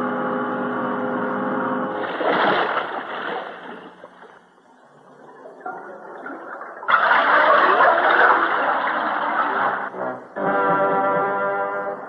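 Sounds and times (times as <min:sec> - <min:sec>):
rushing bubbling sound effect: 0:02.0 - 0:04.3, 0:05.9 - 0:09.9
sustained brass chord: 0:09.9 - 0:12.0.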